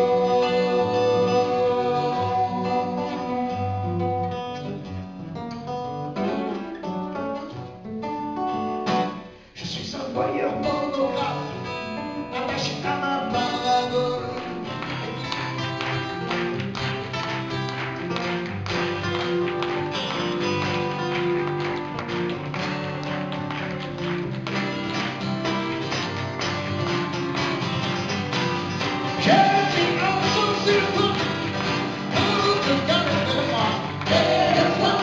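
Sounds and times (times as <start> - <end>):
acoustic guitars strumming: 0.0 - 35.0
woman singing: 32.2 - 35.0.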